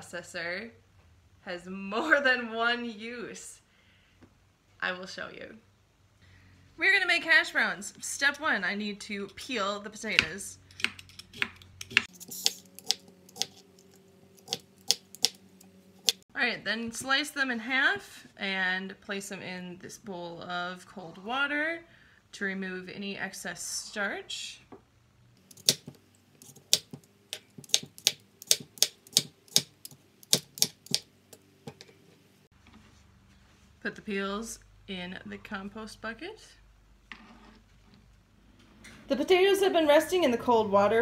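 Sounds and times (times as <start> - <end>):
vegetable peeler scraping potato: 10.7 - 15.4, 25.4 - 31.0.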